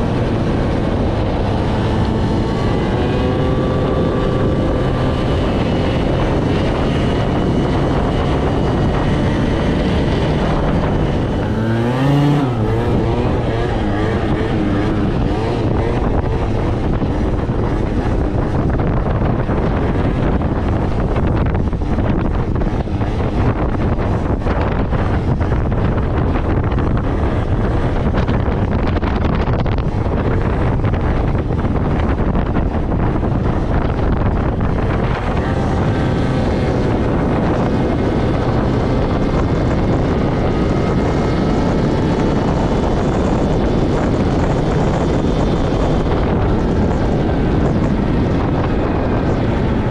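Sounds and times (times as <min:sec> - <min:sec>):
scooter engine running: 0:00.0 - 0:49.9
wind buffeting microphone: 0:00.0 - 0:49.9.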